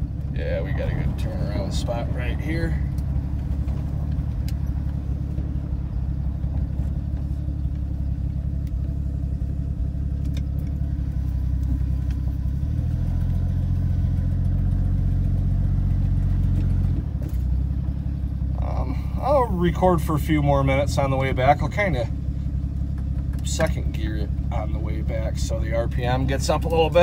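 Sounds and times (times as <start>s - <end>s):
truck engine running: 0.0s - 27.0s.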